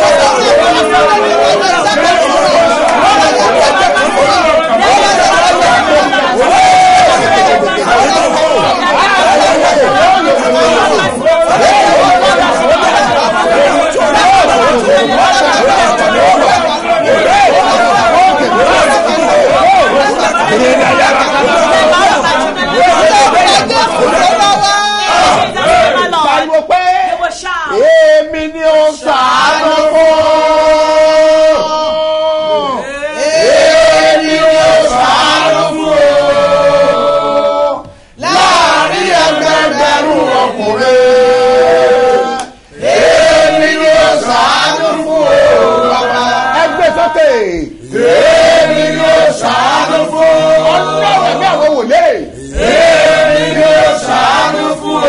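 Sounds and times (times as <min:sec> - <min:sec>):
man praying aloud: 0:00.0 - 0:42.4, 0:43.8 - 0:48.0.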